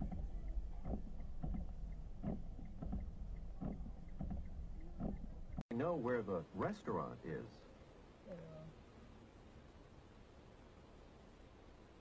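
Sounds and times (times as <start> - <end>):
car engine idling: 0.0 - 5.6.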